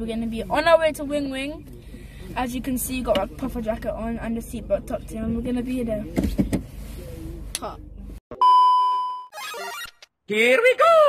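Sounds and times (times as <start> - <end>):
jumbled electronic sound: 9.3 - 10.0.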